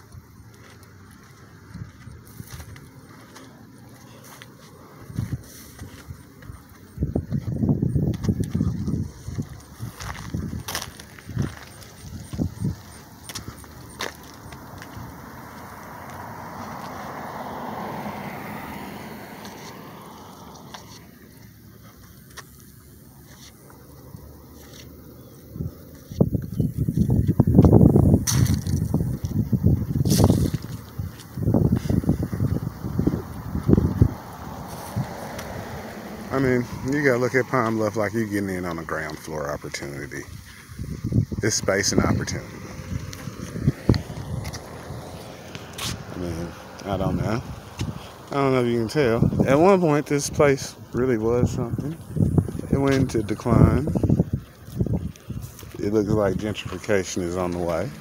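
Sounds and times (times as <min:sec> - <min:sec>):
car passing: 0:00.0 - 0:58.0.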